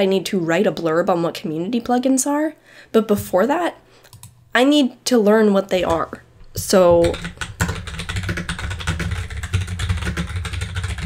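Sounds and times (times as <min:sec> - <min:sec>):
computer keyboard typing: 0:04.1 - 0:04.4, 0:05.8 - 0:11.0.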